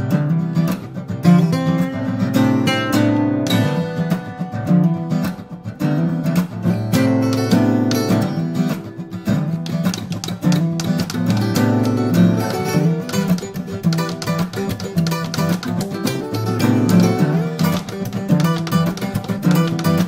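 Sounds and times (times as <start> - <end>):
fingerstyle acoustic guitars: 0.0 - 20.0.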